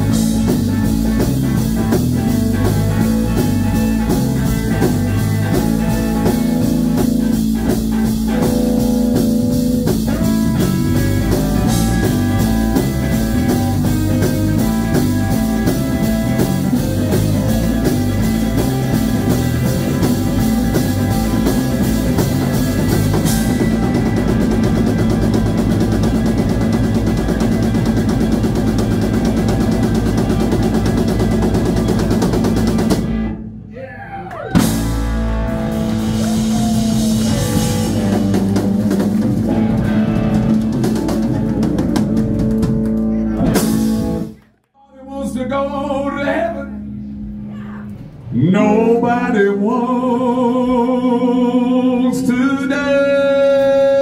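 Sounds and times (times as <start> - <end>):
drum kit: 0.0 - 44.6
electric guitar: 0.0 - 44.6
electric bass guitar: 0.0 - 54.0.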